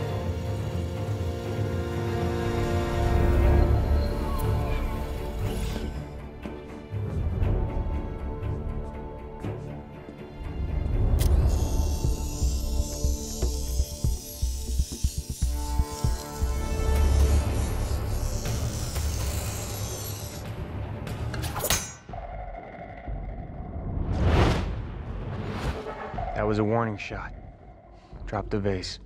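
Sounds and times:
dramatic film score: 0:00.0 - 0:29.0
long hiss: 0:11.2 - 0:20.4.

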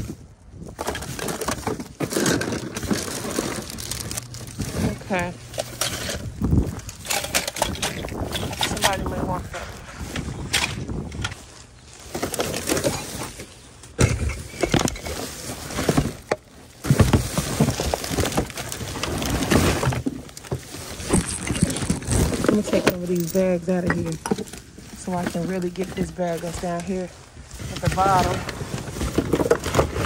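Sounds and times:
plastic bags rustling: 0:00.0 - 0:30.0.

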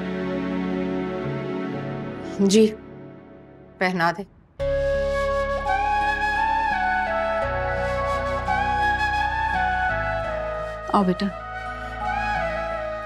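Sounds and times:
slow melody over low chords: 0:00.0 - 0:13.0.

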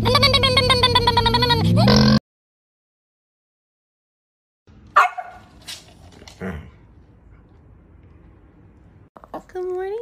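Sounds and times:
dog barking: 0:04.9 - 0:05.5.

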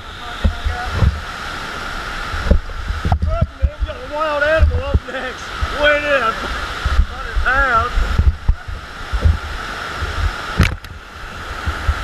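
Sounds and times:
water rushing from wave machine: 0:00.0 - 0:12.0.

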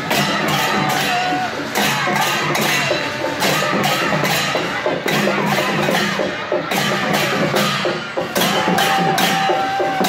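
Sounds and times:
crowd voices: 0:00.0 - 0:10.0
drums: 0:00.0 - 0:10.0.

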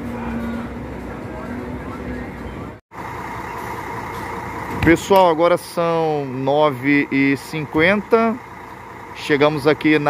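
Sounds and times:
coach engine idling: 0:00.0 - 0:10.0.

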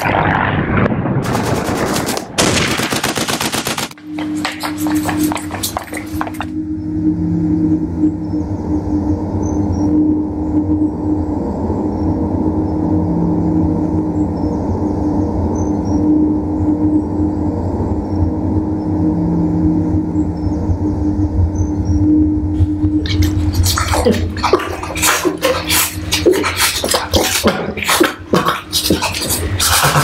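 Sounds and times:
low rumbling drone: 0:00.0 - 0:30.0
deep sustained tones: 0:04.0 - 0:28.3.

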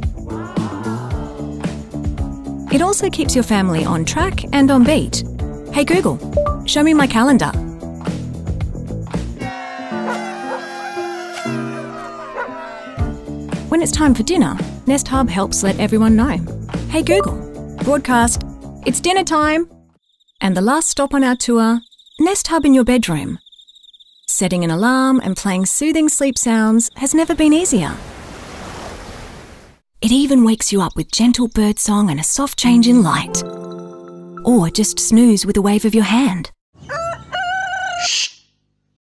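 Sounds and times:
background music with held notes: 0:00.0 - 0:18.8, 0:33.0 - 0:35.4
dog crying: 0:09.5 - 0:13.1
ocean waves surf: 0:28.0 - 0:29.8.

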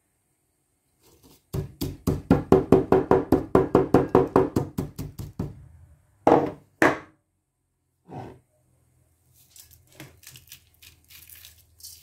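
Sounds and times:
stone pestle pounding in mortar: 0:01.5 - 0:05.6.

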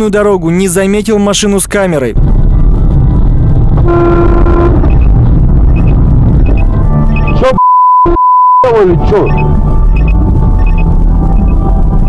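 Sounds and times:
man talking: 0:00.0 - 0:02.2, 0:07.4 - 0:09.4
engine and road rumble: 0:00.0 - 0:07.6, 0:08.7 - 0:12.0
car horn: 0:03.8 - 0:05.1
steady high beep: 0:07.2 - 0:11.6.

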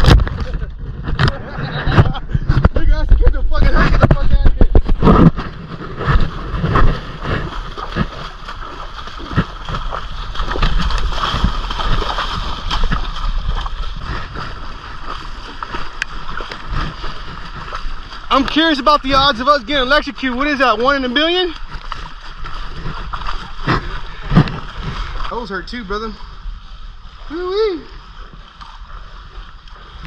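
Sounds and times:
water sloshing and splashing: 0:00.0 - 0:30.0
knocks and rubbing on camera: 0:01.0 - 0:08.2
water rushing: 0:02.8 - 0:30.0.

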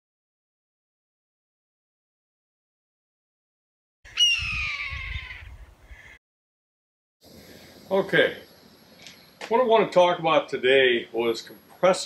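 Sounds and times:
hawk screaming: 0:04.1 - 0:06.2.

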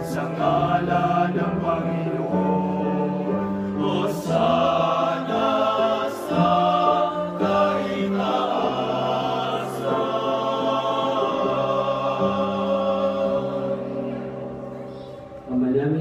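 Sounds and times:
male vocal ensemble singing: 0:00.0 - 0:15.4.

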